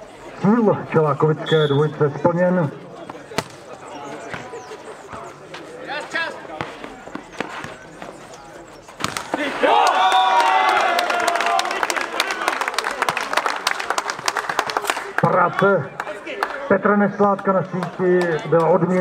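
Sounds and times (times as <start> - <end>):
people cheering: 9.2 - 19.0
rapid clapping: 9.8 - 15.4.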